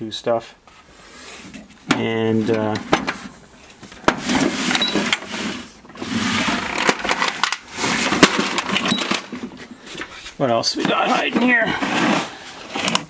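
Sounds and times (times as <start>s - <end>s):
tools clattering in metal drawer: 1.9s - 3.4s, 4.0s - 13.0s.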